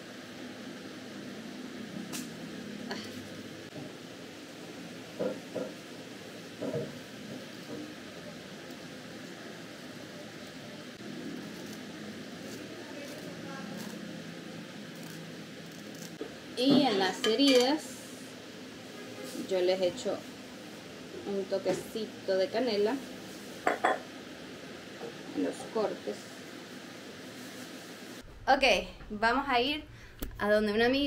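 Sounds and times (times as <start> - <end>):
low background hum: 0.0 - 31.0
scissors snipping leaves: 14.9 - 16.2.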